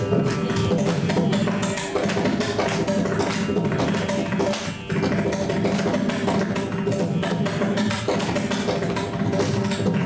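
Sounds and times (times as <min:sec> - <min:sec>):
mridangam drumming: 0:00.0 - 0:10.0.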